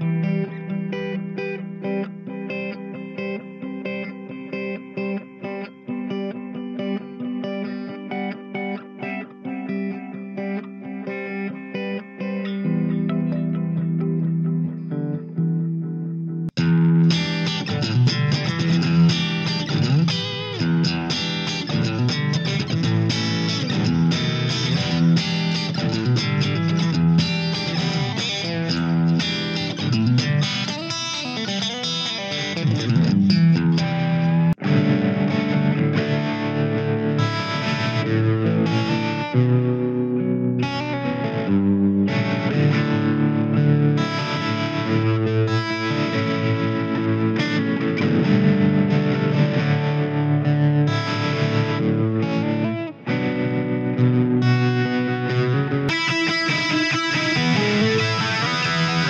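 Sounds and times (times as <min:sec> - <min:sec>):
electric guitar through amp: 0:00.0 - 0:59.0.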